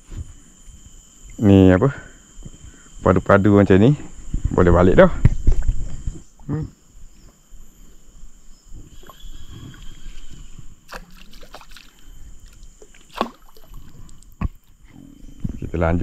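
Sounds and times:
water lapping against boat hull: 10.9s - 14.6s.

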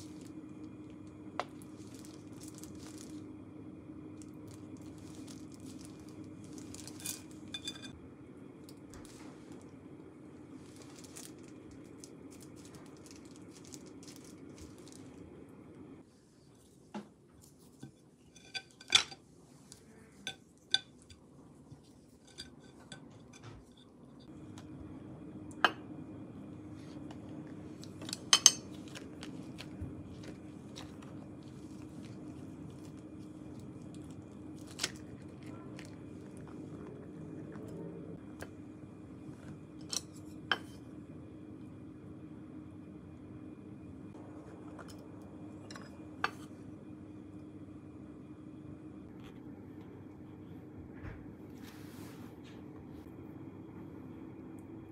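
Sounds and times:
steady low hum: 0.0s - 54.9s
chopsticks clinking on ceramic bowls: 6.7s - 8.0s, 28.0s - 31.2s.

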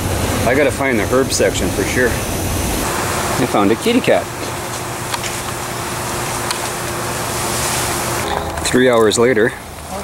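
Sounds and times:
faint steady whine: 0.0s - 10.0s
low hum: 1.0s - 10.0s.

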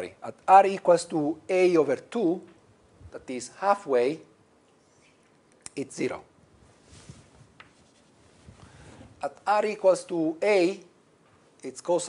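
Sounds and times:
faint scratching of writing: 6.9s - 8.8s.

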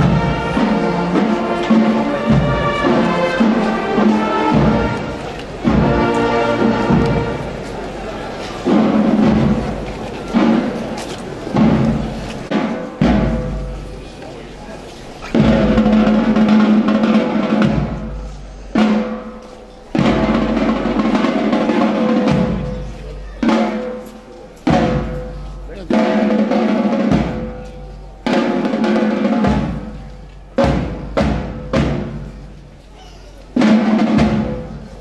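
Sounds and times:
snare drum rolls: 0.0s - 14.0s, 15.2s - 32.5s, 33.5s - 35.0s
bass drum strokes: 0.0s - 14.1s, 15.3s - 32.6s
band playing slow march: 0.0s - 35.0s.

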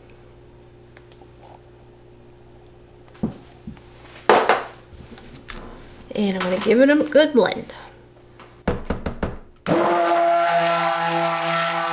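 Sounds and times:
faint steady hum: 0.0s - 9.7s.

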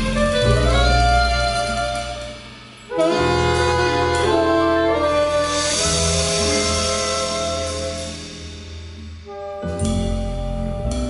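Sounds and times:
jazz band held chords: 0.0s - 11.0s.

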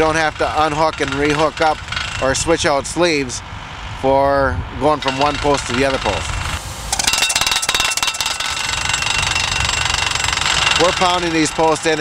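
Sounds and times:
post driver hammering metal post: 0.0s - 2.5s, 5.0s - 12.0s
high metallic ring: 5.0s - 12.0s.

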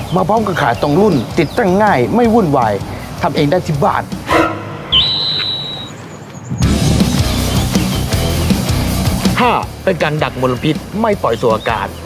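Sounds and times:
high whistle tone: 4.3s - 6.3s.

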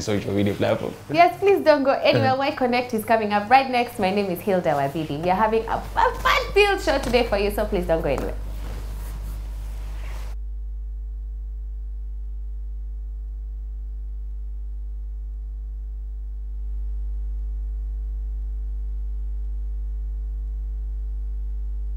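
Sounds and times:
studio sound: 0.0s - 14.0s
electrical hum: 0.0s - 21.9s.

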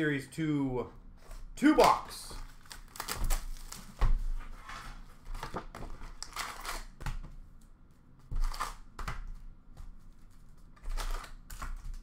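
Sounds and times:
plastic wrap crinkling: 2.2s - 4.2s.

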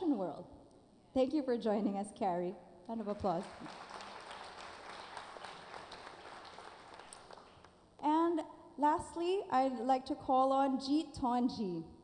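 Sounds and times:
audience applauding: 3.5s - 7.7s.

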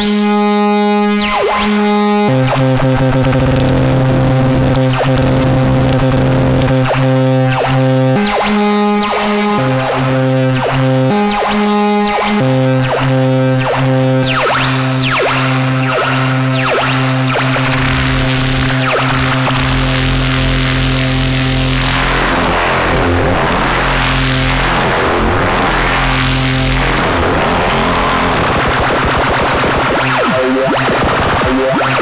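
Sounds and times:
synthesizer drone with phaser sweeps: 0.0s - 32.0s
deep low rumble: 21.4s - 32.0s.

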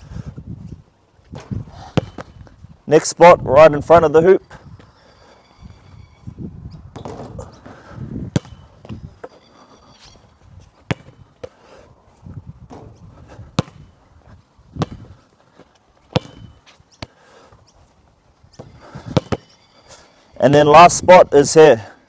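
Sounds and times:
basketball bouncing on hard court: 1.4s - 2.3s, 6.9s - 7.5s, 8.3s - 9.0s, 10.9s - 11.5s, 13.6s - 13.9s, 14.8s - 15.2s, 16.1s - 17.1s, 18.6s - 19.5s.

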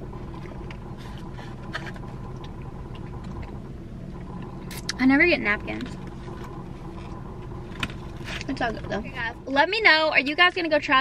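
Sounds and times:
car engine idling: 0.0s - 11.0s
faint hum: 0.0s - 11.0s.

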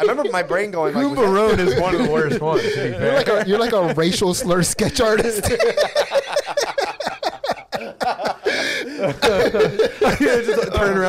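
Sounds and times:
men laughing: 0.0s - 11.0s.

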